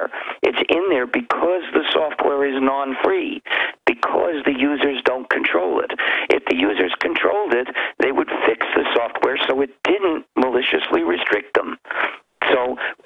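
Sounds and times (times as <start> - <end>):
man talking over telephone: 0.0 - 13.0.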